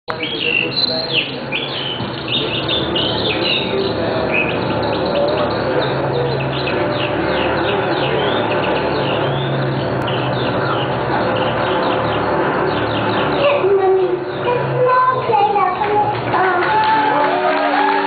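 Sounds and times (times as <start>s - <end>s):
birds chirping: 0.1s - 18.0s.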